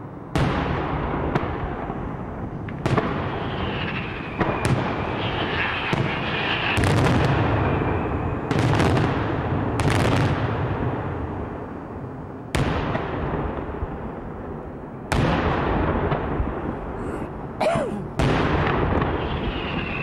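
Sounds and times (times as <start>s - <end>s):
rumble of fireworks: 0.0s - 20.0s
fireworks bursting in loud bangs: 0.3s - 11.2s, 12.5s - 14.2s, 15.1s - 16.7s, 18.1s - 20.0s.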